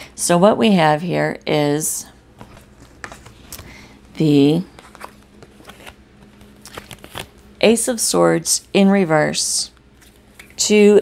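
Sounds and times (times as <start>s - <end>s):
faint steady hum: 0.0s - 11.0s
cards clicking and rustling: 4.8s - 7.4s.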